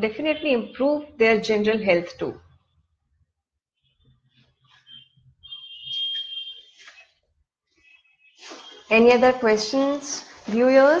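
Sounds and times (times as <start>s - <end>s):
high-pitched electronic beep: 4.8s - 6.7s.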